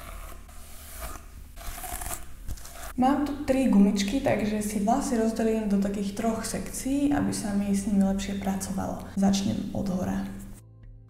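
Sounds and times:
hairbrush scraping through hair: 0.0 - 3.0.

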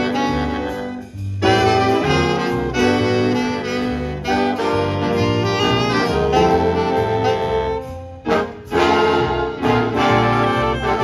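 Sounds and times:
jazz big band playing: 0.0 - 11.0
moving bass line: 0.0 - 11.0
saxophones and brass chords: 0.0 - 11.0.

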